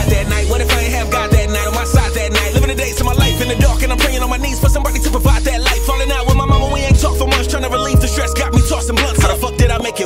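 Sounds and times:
hip hop beat: 0.0 - 10.0
rapping: 0.0 - 10.0.

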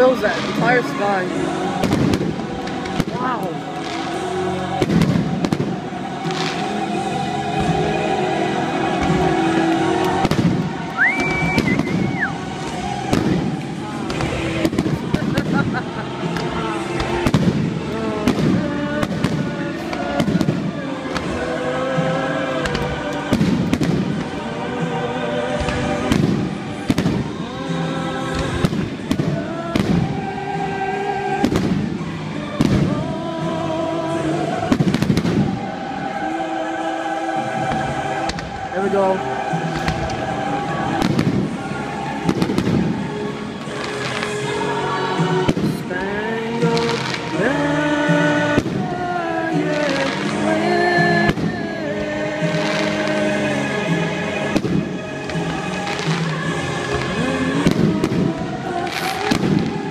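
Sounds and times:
fireworks launching and bursting: 0.0 - 59.9
loud music with singing: 0.0 - 59.9.

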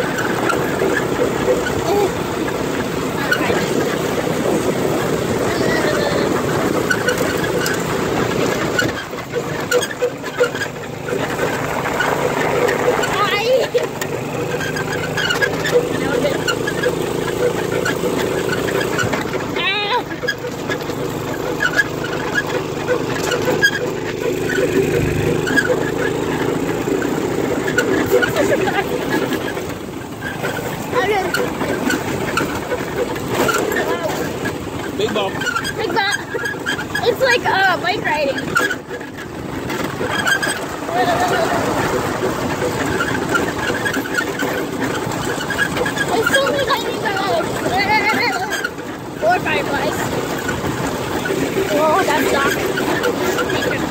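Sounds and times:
go-kart engine running: 0.0 - 53.9
kart frame rattling and knocking: 0.0 - 53.9.

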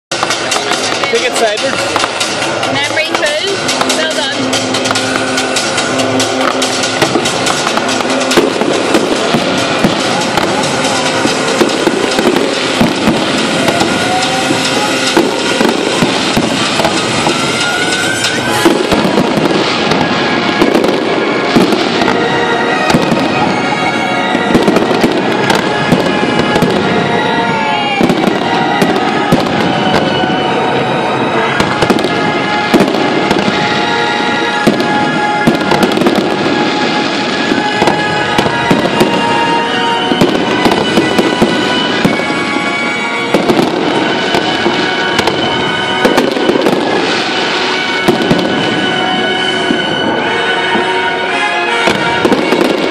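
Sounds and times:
fireworks bangs and crackles: 0.1 - 52.9.

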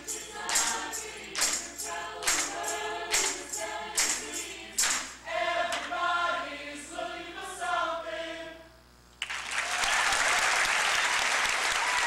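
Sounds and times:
choir singing: 0.0 - 8.7
hand claps: 0.1 - 5.9.

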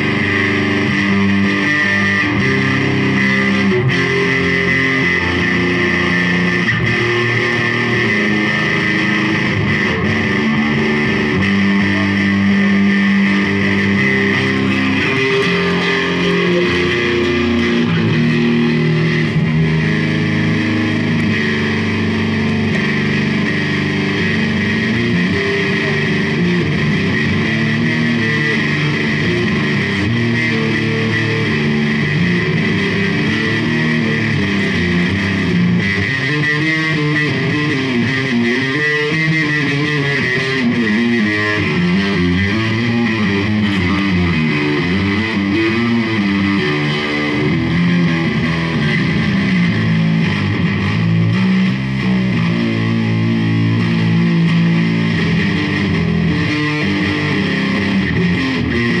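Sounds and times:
electric bass guitar: 0.0 - 59.0.

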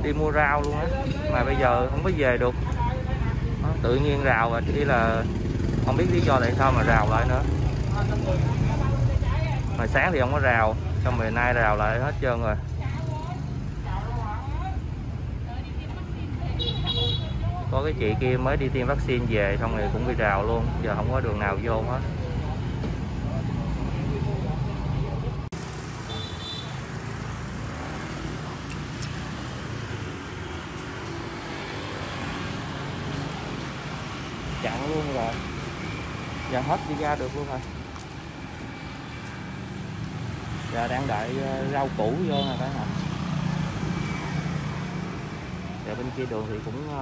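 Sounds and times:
road traffic: 0.0 - 47.0
street noise: 0.0 - 47.0.

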